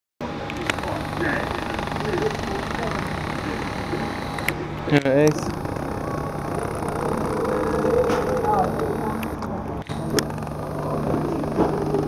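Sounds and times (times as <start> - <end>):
faint voices: 0.2 - 12.0
mechanical hum: 0.2 - 12.0.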